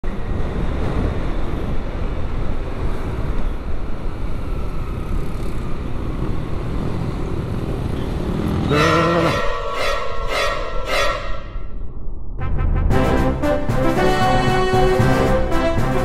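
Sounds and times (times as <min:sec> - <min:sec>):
wind rush on microphone: 0:00.0 - 0:07.9
motorcycle engine: 0:04.7 - 0:09.5.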